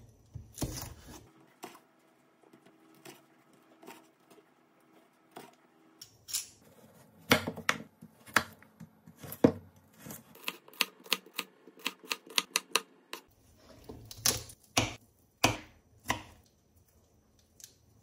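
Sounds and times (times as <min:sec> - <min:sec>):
knife chopping on wooden board: 0:14.2 - 0:16.4.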